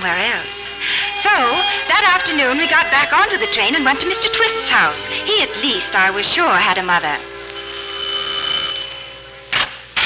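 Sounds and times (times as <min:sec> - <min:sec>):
doorbell ringing: 0:07.6 - 0:09.3.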